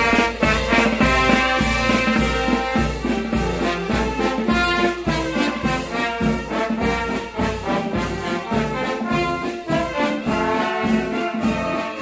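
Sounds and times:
trumpets and trombones: 0.0s - 12.0s
wind band playing a march: 0.0s - 12.0s.

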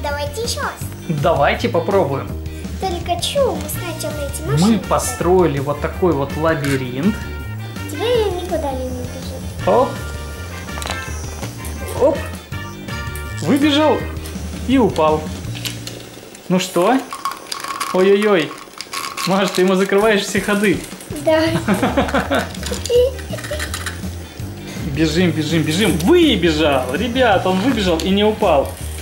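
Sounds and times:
child's voice: 0.0s - 0.9s, 2.8s - 4.8s, 7.9s - 9.5s, 21.1s - 21.7s, 22.6s - 23.9s
background music with steady beat: 0.0s - 19.3s, 20.1s - 29.0s
toy robot bug rattling: 7.9s - 9.5s, 10.6s - 11.8s, 13.4s - 24.3s, 25.7s - 29.0s.

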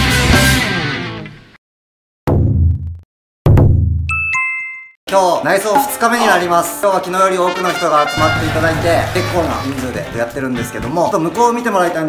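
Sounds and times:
bright bell-like dings: 4.1s - 5.0s
heavy bass impact hit: 8.2s - 10.3s.

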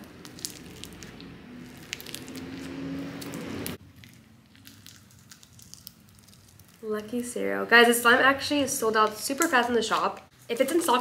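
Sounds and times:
slime squishing by hand: 0.0s - 7.0s
small crackles: 0.0s - 7.3s.

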